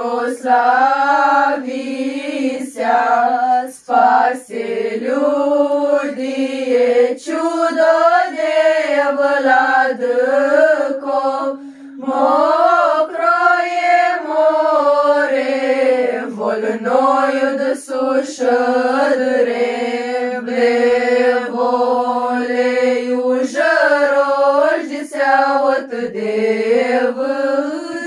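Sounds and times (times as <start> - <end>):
women singing a cappella: 0.0 - 28.0.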